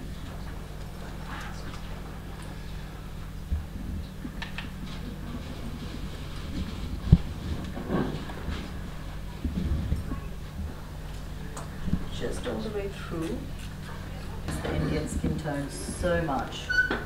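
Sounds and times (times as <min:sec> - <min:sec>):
steady low hum: 0:00.0 - 0:16.8.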